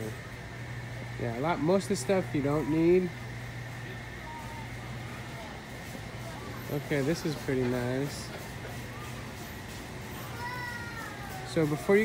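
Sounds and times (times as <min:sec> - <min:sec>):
crowded store noise: 0:00.0 - 0:12.0.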